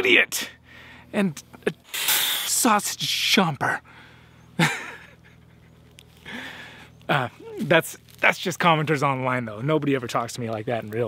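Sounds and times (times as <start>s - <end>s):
faint low hum: 2.5s - 11.0s.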